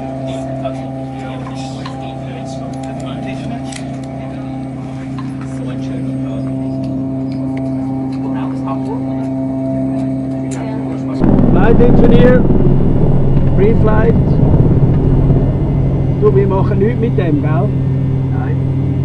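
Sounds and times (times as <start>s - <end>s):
steady mechanical hum: 0.0s - 19.0s
dense rumble: 11.2s - 19.0s.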